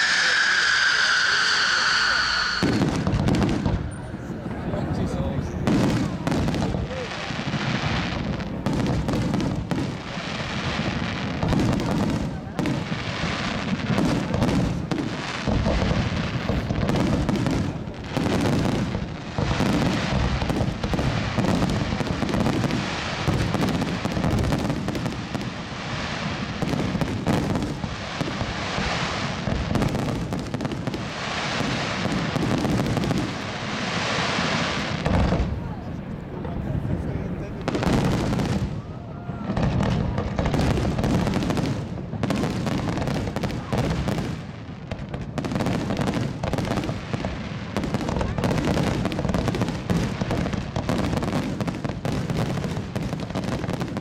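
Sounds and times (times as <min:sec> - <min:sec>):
firework shells bursting: 0:00.0 - 0:04.1.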